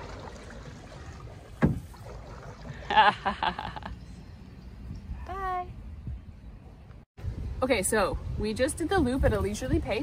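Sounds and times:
water and paddle noise: 0.0s - 4.0s.

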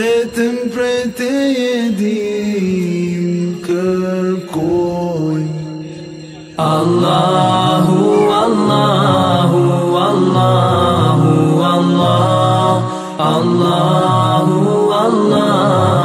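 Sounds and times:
devotional chant music: 0.0s - 16.0s.

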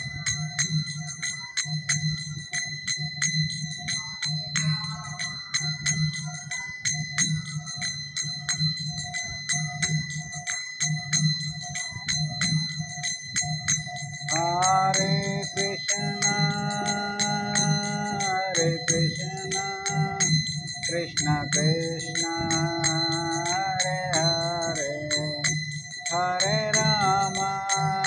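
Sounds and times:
hand cymbals clashing: 0.0s - 28.0s
person singing: 14.3s - 28.0s.

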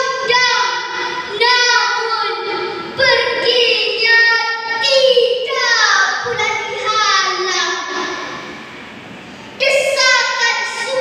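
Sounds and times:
girl reciting into a microphone: 0.0s - 8.7s, 9.4s - 11.0s.

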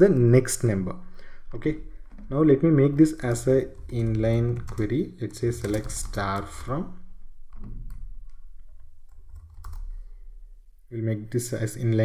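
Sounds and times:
low steady hum: 0.0s - 12.0s
keystrokes on computer keyboard: 3.2s - 6.8s, 7.5s - 10.0s.

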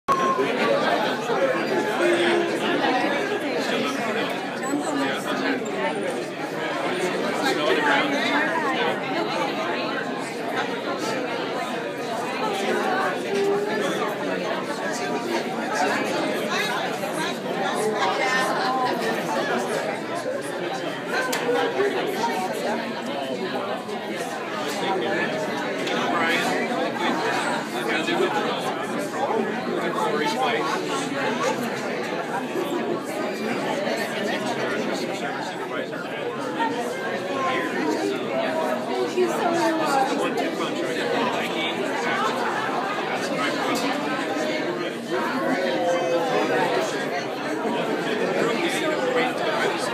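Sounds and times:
crowd chatter: 0.0s - 49.9s.

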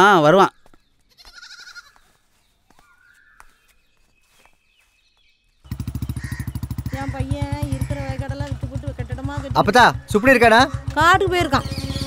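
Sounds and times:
motorcycle engine running: 5.6s - 12.0s.

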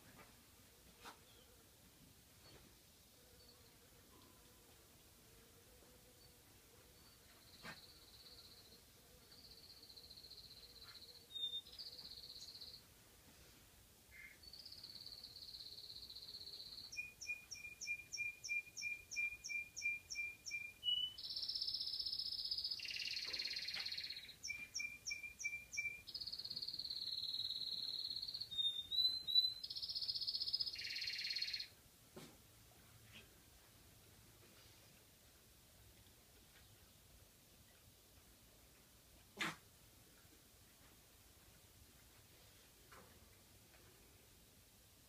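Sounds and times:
songbird singing: 2.4s - 13.0s, 14.1s - 31.8s
puppy short sharp yelp: 39.4s - 39.6s.

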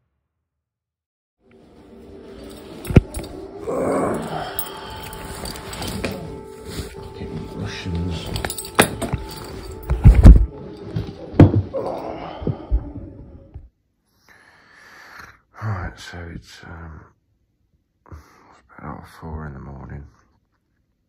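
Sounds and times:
air raid siren: 3.7s - 8.2s
knocks and rustles of handling: 5.0s - 11.8s.

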